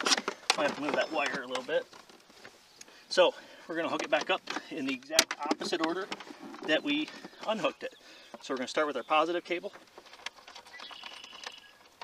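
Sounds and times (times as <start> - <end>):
battery cable terminals clicking: 3.9 - 7.5.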